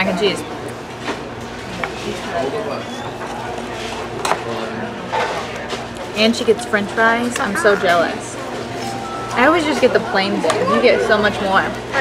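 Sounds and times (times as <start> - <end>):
murmur of diners' chatter: 0.0 - 12.0.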